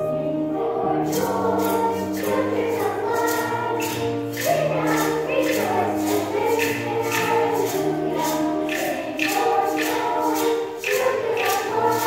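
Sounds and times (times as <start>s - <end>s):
children's choir singing: 0.0s - 12.0s
instrumental accompaniment: 0.0s - 12.0s
percussion beat: 1.0s - 12.0s.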